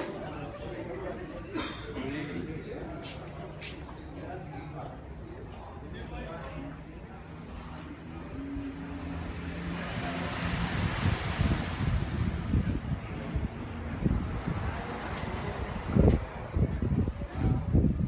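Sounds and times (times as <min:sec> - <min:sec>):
wind gusting on microphone: 0:09.9 - 0:18.0.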